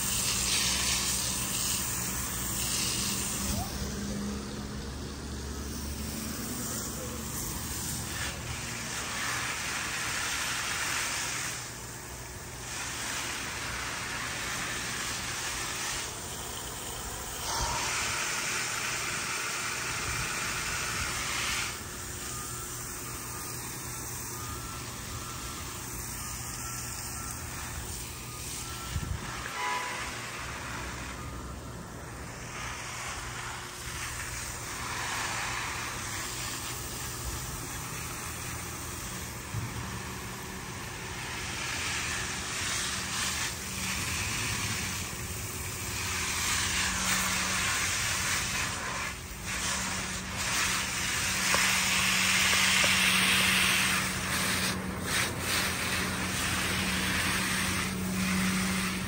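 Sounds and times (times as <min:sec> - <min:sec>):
hose nozzle spraying water: 0:00.0 - 0:04.2, 0:05.1 - 0:59.0.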